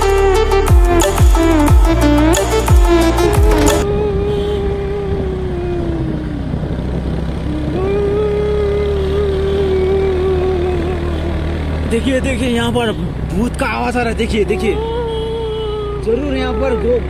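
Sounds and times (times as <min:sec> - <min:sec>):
car engine humming: 0:00.0 - 0:17.0
wavering ghost-like wails: 0:03.4 - 0:06.3, 0:07.6 - 0:11.4.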